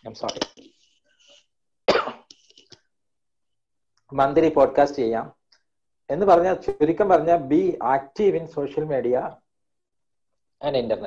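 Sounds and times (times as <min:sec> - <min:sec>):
person coughing: 0:01.9 - 0:02.8.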